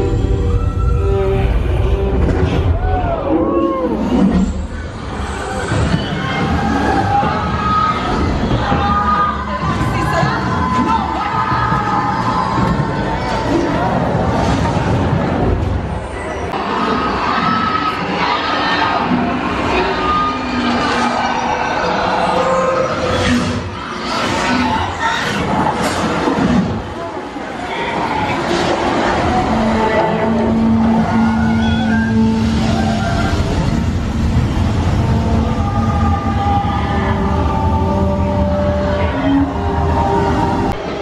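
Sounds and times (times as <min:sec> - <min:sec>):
sweeping orchestral score: 0:00.0 - 0:41.0.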